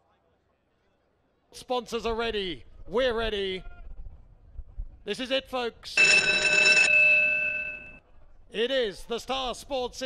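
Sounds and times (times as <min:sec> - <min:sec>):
bell rattling and ringing: 0:06.0 - 0:08.0.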